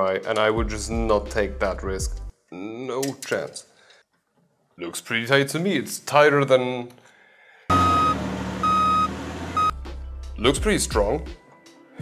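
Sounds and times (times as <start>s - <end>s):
truck engine humming: 7.7s - 9.8s
truck reversing alarm beeps: 7.7s - 9.8s.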